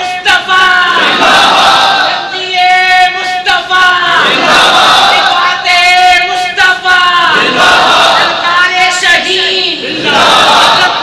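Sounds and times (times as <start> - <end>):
crowd shouting together: 0.2 - 11.0.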